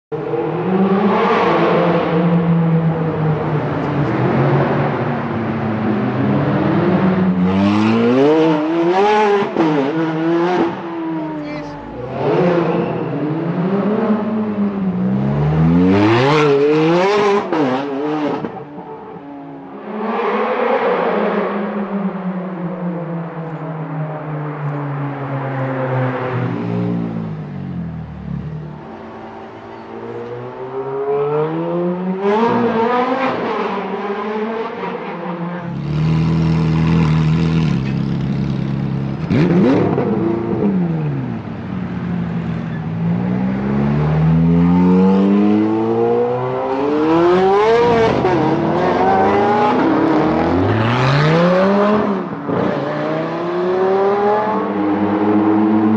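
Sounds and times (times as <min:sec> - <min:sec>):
car engine accelerating hard: 0:00.2 - 0:18.7, 0:25.8 - 0:55.9.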